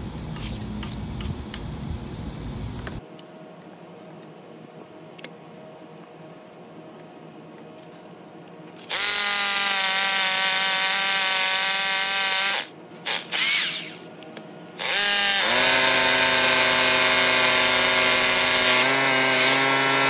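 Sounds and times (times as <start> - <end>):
hammer drill boring into concrete: 8.8 - 14.1, 14.8 - 20.0.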